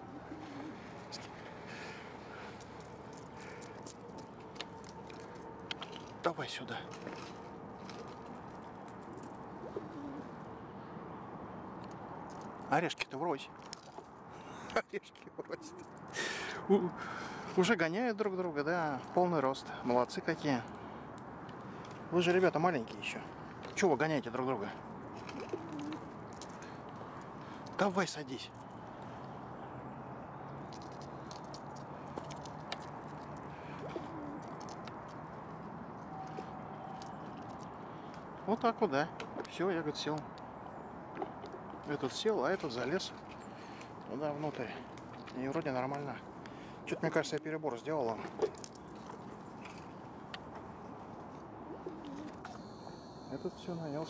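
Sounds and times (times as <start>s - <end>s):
faint bird calls: 25.2s - 27.6s, 33.4s - 34.8s, 51.6s - 54.0s.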